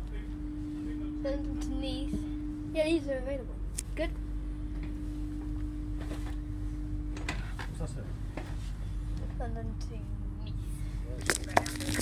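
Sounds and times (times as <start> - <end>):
train carriage rumble and hum: 0.0 - 12.0.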